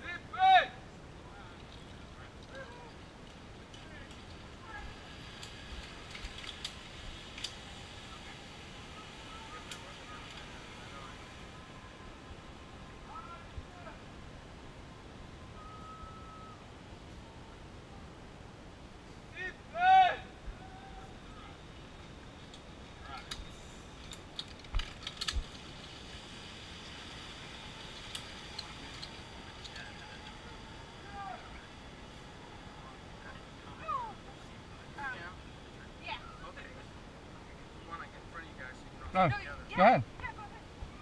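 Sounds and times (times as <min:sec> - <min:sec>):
metallic clicks of harness gear: 0:01.5 - 0:07.8, 0:22.4 - 0:30.6.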